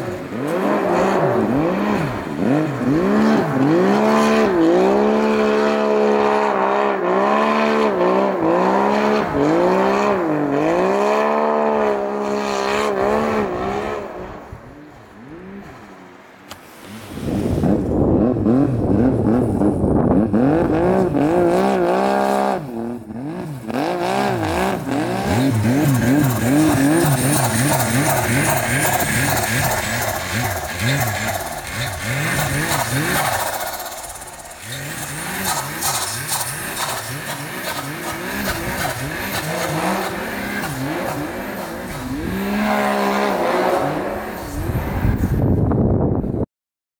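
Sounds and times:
snowmobile engine revving: 0.0 - 45.4.

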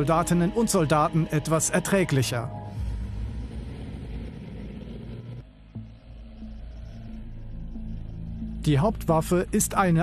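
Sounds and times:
tank diesel engine drone: 0.0 - 10.0.

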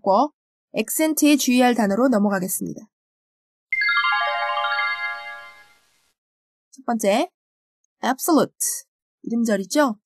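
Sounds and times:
bell-like chime jingle: 3.7 - 5.9.

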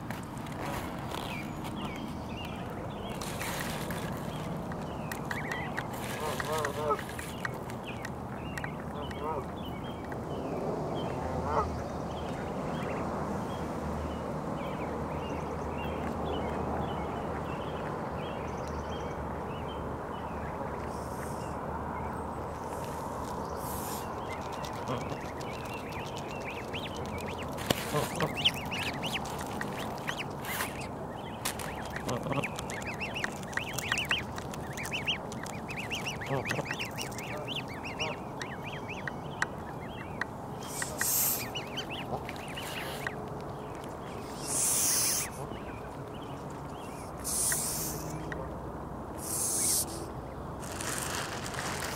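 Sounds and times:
goslings peeping: 1.0 - 10.1, 23.6 - 48.5, 49.1 - 51.9.

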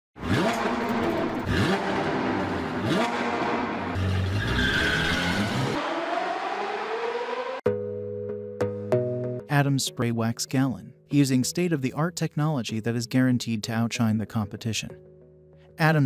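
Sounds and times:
sports car engine revving: 0.2 - 7.6.

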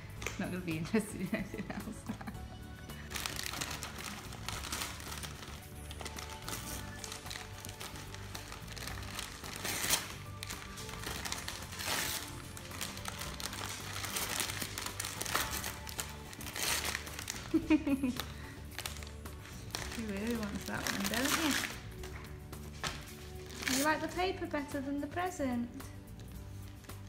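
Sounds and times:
background music: 0.0 - 27.0
dog tearing wrapping paper: 2.9 - 22.2, 22.9 - 24.1.

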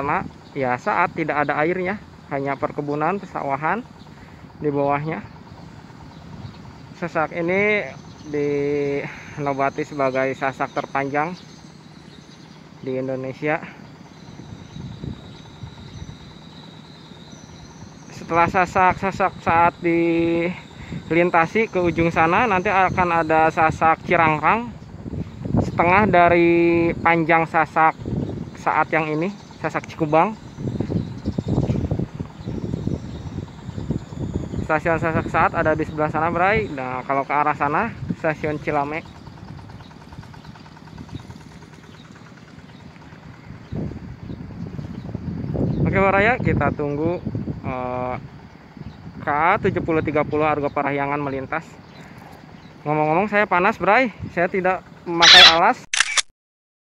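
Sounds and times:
wind buffeting microphone: 0.0 - 55.1
insects droning: 0.0 - 56.2.

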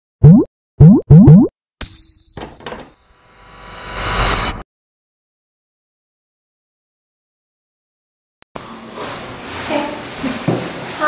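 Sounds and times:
cartoon boing glides: 0.2 - 1.5.

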